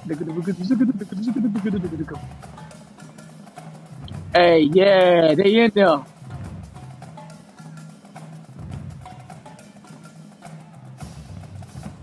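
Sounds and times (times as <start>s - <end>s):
low drum tones: 0.0s - 2.7s, 4.0s - 6.9s.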